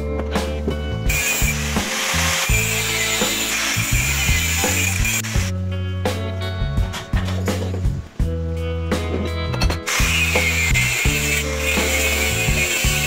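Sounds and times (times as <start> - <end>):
background music: 0.0 - 13.0
angle grinder cutting steel pipe: 1.1 - 5.5, 9.9 - 13.0.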